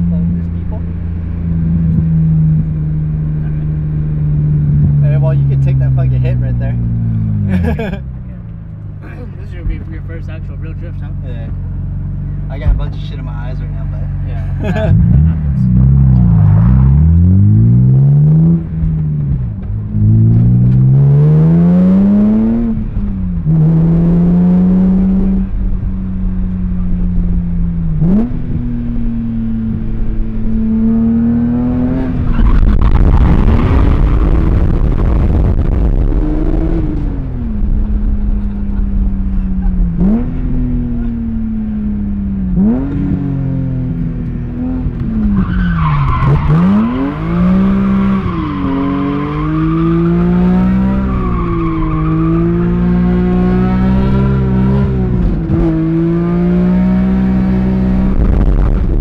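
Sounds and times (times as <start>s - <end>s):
car engine revving hard: 20.0s - 25.5s, 28.0s - 59.0s.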